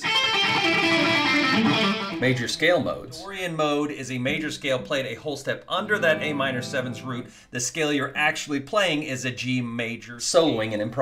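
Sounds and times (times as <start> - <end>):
electric guitar playing scale: 0.0 - 2.8, 5.8 - 7.4.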